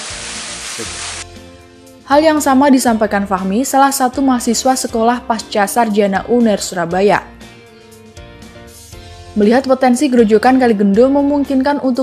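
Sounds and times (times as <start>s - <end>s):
small waterfall rushing: 0.0s - 1.2s.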